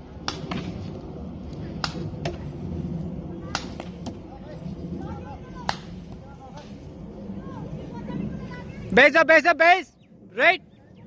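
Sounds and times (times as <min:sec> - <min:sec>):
low background murmur: 0:00.9 - 0:09.2.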